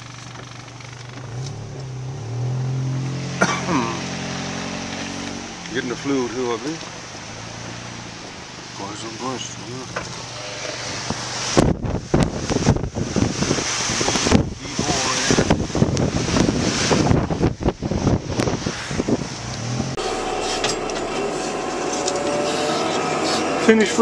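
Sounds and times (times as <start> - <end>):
engine hum inside cab: 0.0 - 24.0
wind buffeting microphone: 10.8 - 22.6.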